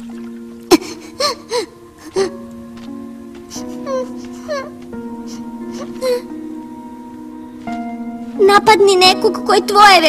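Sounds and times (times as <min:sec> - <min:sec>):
background music chords: 0:00.0 - 0:10.0.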